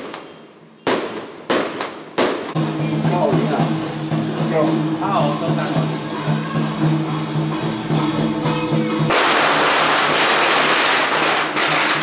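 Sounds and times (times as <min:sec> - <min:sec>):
firecrackers crackling: 0:00.0 - 0:03.8, 0:08.9 - 0:12.0.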